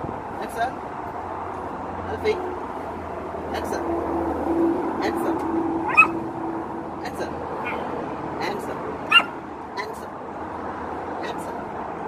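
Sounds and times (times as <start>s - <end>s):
outdoor background hum: 0.0s - 12.0s
man giving command: 2.1s - 2.6s, 5.0s - 5.4s, 7.0s - 7.4s, 8.4s - 8.9s, 9.7s - 10.2s, 11.2s - 11.6s.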